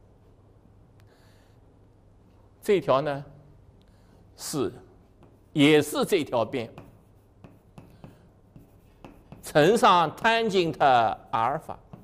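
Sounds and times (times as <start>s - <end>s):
chalk scratching on blackboard: 5.0s - 12.0s
chalk tapping: 5.0s - 12.0s.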